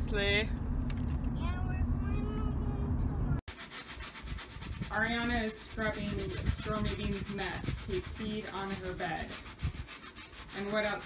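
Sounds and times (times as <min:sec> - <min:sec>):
van road and engine rumble: 0:00.0 - 0:03.5
faint voice: 0:01.4 - 0:03.4.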